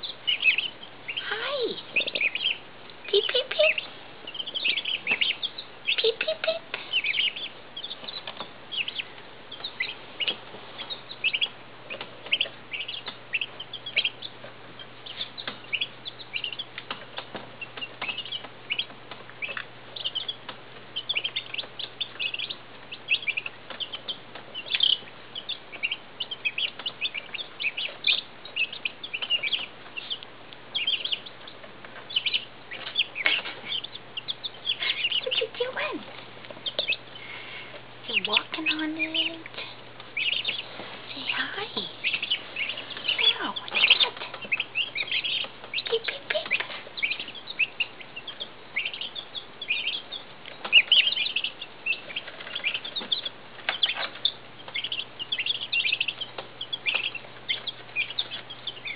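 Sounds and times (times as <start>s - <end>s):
chicks peeping: 0.0s - 58.9s.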